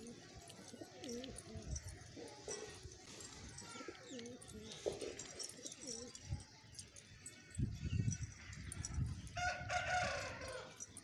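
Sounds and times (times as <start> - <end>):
pigeons cooing: 0.0 - 6.4.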